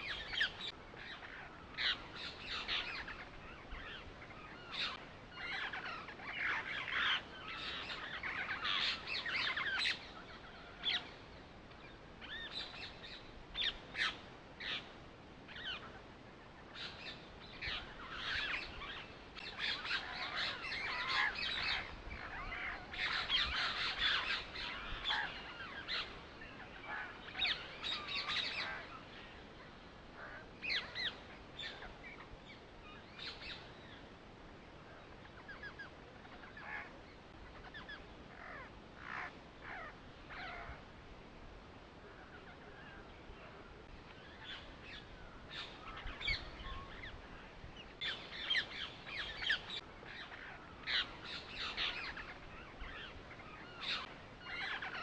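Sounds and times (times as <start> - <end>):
birds chirping: 0.0 - 40.9, 41.5 - 55.0.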